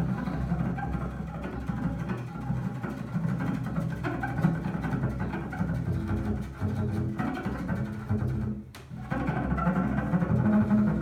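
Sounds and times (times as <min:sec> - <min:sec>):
bowed double bass: 0:00.0 - 0:11.0.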